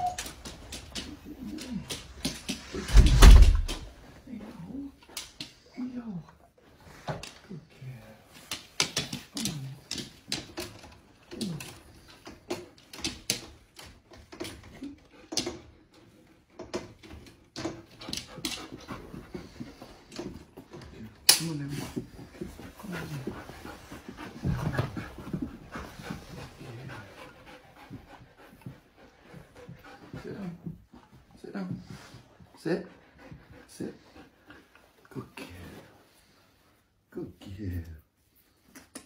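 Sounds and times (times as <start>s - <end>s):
dog whining and grumbling: 0.0s - 2.9s
loud low thump: 2.7s - 3.9s
dog panting: 14.4s - 36.9s.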